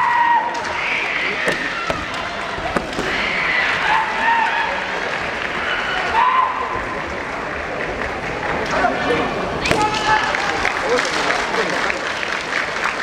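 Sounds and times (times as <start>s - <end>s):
spectators clapping: 7.0s - 13.0s.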